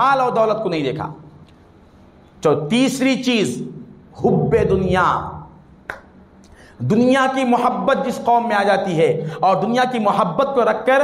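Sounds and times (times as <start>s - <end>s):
man speaking: 2.4s - 5.6s.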